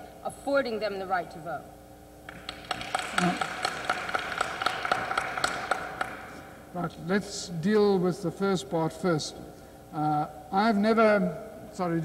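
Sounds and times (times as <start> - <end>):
audience applauding: 2.3 - 6.6.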